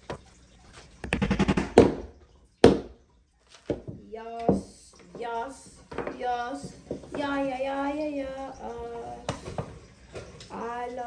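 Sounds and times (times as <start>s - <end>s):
hammer knocking on wood: 1.1s - 2.0s.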